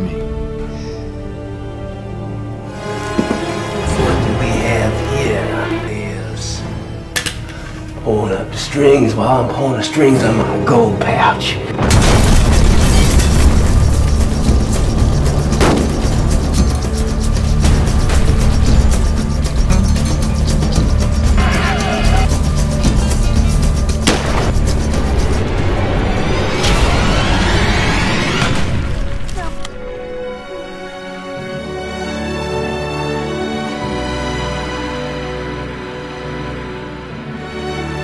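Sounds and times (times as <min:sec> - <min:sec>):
trailer music: 0:00.0 - 0:38.0
gunshots and booms: 0:11.8 - 0:14.4, 0:24.0 - 0:25.0.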